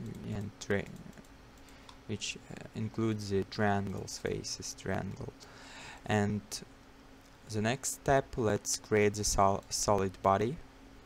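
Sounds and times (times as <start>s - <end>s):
faint computer clicks: 0.0s - 2.0s.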